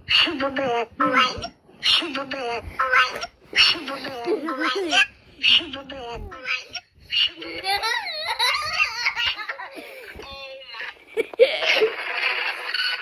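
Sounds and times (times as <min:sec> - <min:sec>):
high-pitched voices talking: 0:00.0 - 0:11.0
breathy laughter: 0:10.8 - 0:13.0.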